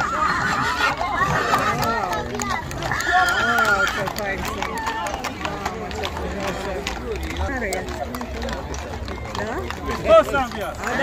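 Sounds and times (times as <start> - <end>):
hooves clip-clopping on asphalt: 0.0 - 11.0
horse whinnying: 2.8 - 5.6.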